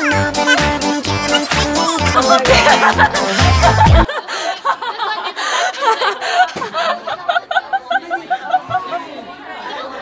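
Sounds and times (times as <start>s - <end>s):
young women talking: 2.0s - 3.0s.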